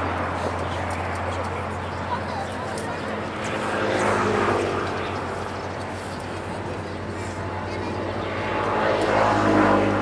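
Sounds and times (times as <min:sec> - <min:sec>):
distant engine drone: 0:00.0 - 0:10.0.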